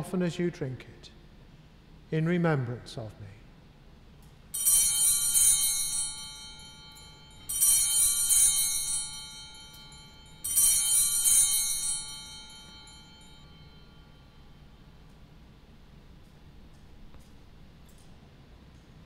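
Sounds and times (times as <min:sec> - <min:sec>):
bells ringing: 0:04.5 - 0:14.9.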